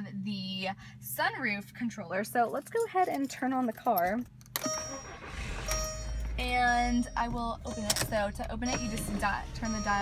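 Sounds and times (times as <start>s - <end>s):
car engine cranking and idling: 3.2s - 10.0s
dashboard chime: 4.6s - 10.0s
ignition key click: 7.7s - 9.8s.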